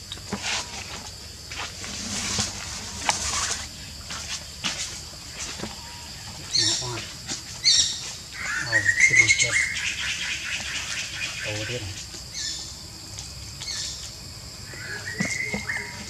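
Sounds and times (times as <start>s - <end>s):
monkey high-pitched calls: 7.6s - 11.6s, 14.7s - 16.0s.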